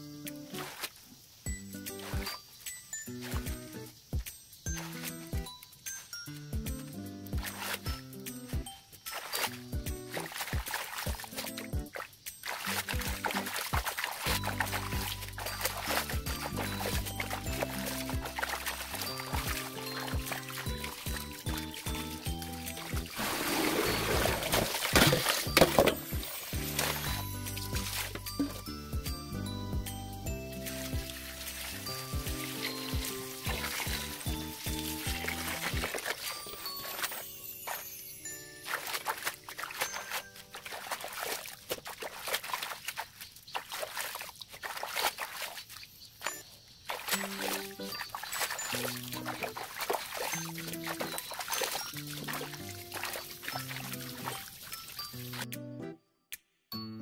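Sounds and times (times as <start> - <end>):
background music: 1.5 - 41.1, 47.1 - 57.0
hands swishing greens in water: 7.3 - 28.7, 30.4 - 46.0, 46.8 - 55.5
hose water pouring into metal basin: 7.3 - 55.5.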